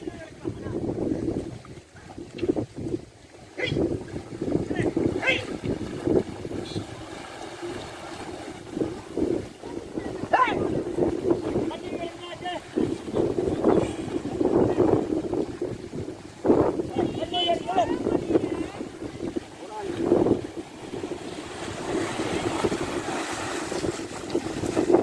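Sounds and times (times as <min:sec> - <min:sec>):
water sloshing and splashing: 0:00.0 - 0:25.0
wind buffeting microphone: 0:00.0 - 0:25.0.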